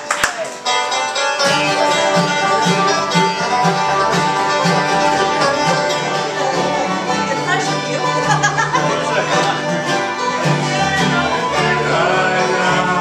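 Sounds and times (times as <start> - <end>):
acoustic guitars: 0.0 - 13.0
banjo: 0.0 - 13.0
mandolins: 0.0 - 13.0
upright bass: 0.0 - 13.0.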